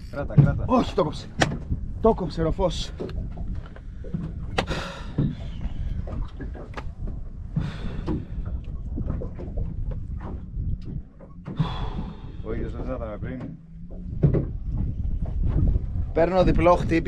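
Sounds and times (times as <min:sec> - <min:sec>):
knocks and clicks on boat deck: 0:00.0 - 0:02.2, 0:02.8 - 0:16.6
wind rumbling on microphone: 0:00.0 - 0:17.0.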